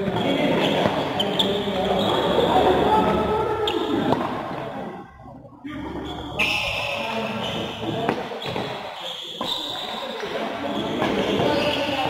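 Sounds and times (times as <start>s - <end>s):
shoes squeaking on court floor: 0.2s - 2.6s, 6.0s - 12.0s.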